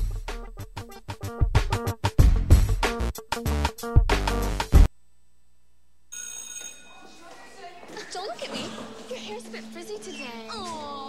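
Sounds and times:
electric school bell ringing: 0:06.2 - 0:07.2.

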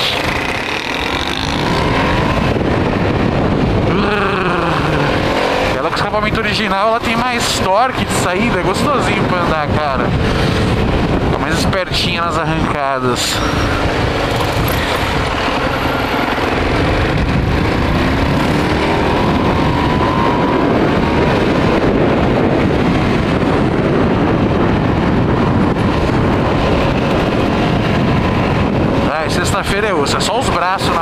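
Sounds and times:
motorcycle accelerating: 0:00.0 - 0:31.0
wind noise on microphone: 0:00.0 - 0:31.0.

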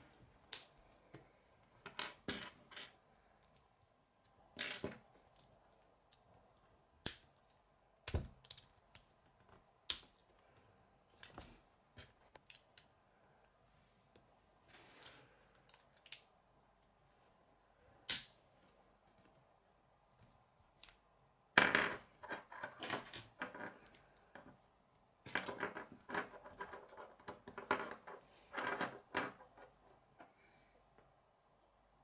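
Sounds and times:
plastic pieces clicking together: 0:15.5 - 0:16.3.

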